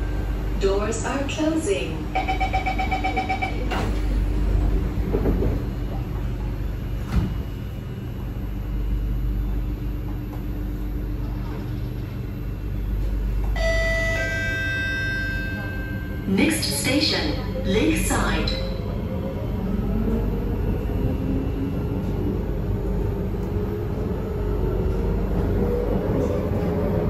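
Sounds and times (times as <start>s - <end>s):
train carriage low hum: 0.0s - 27.0s
door-closing warning beeps: 2.1s - 4.2s, 13.5s - 17.2s
multi-tone chime: 13.6s - 16.2s.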